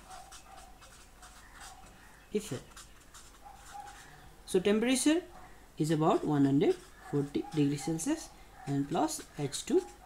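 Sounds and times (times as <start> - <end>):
pen writing on paper: 0.0 - 2.0, 2.6 - 4.2, 6.0 - 8.8.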